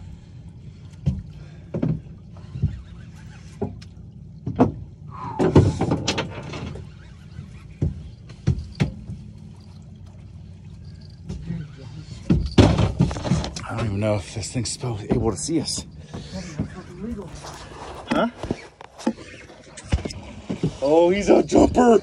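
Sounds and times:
boat engine hum: 0:00.0 - 0:22.0.

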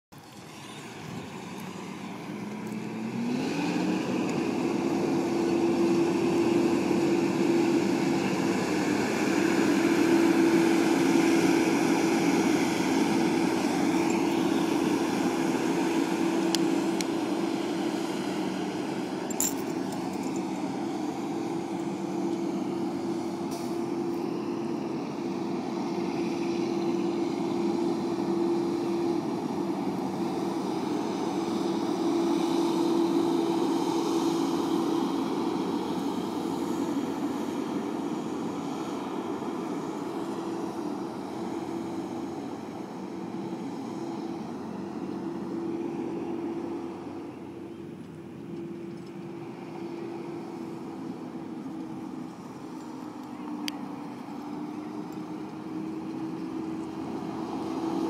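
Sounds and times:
diesel truck engine revving: 0:00.3 - 0:47.9, 0:49.3 - 0:58.0.

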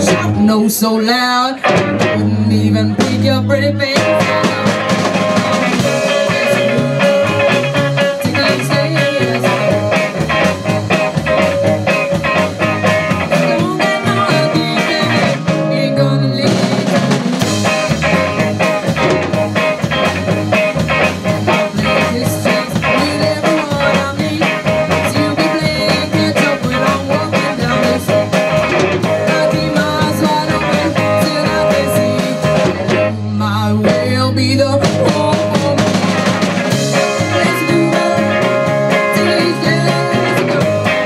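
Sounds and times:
drum kit: 0:00.0 - 0:41.0
electric guitars: 0:00.0 - 0:41.0.

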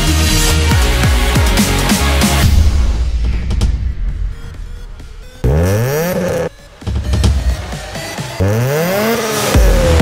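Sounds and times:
electronic music: 0:03.3 - 0:10.0
car engine revving: 0:04.7 - 0:10.0.

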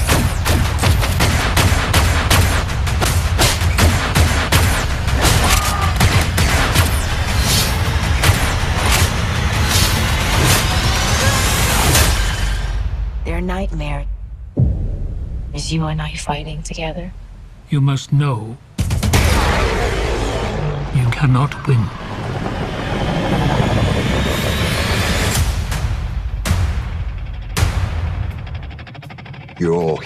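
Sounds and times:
loud low rumble: 0:07.0 - 0:17.7, 0:19.1 - 0:28.9
sharp hits: 0:14.0 - 0:16.0
jet-like engine rush: 0:19.2 - 0:25.8
rising whine: 0:19.3 - 0:25.7.

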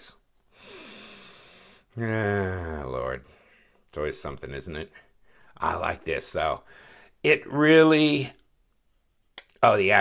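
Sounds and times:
man exhaling: 0:00.5 - 0:01.9.

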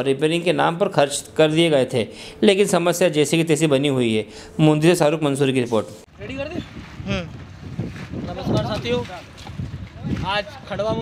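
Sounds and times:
men talking: 0:00.0 - 0:07.4, 0:08.2 - 0:11.0
wind buffeting microphone: 0:06.1 - 0:11.0.

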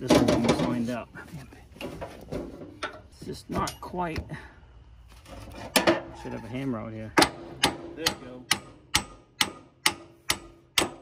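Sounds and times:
metallic strikes steel on steel: 0:07.2 - 0:11.0.

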